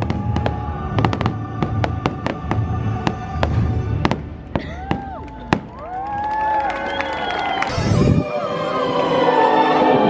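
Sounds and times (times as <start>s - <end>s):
fireworks bangs and crackles: 0.0s - 6.2s.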